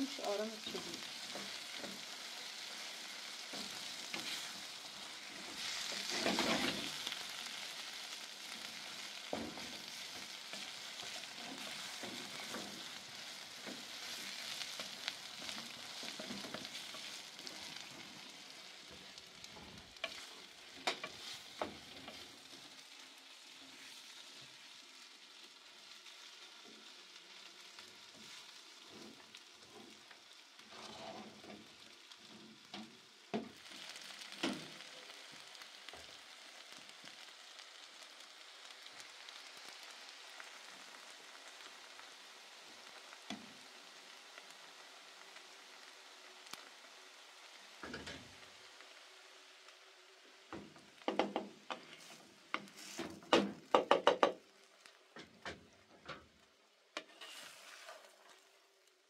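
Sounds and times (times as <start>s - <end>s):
meat and vegetables sizzling: 0.0s - 59.0s
wooden spatula scraping pan: 0.2s - 22.6s, 30.7s - 31.7s, 51.1s - 54.3s, 57.0s - 58.4s.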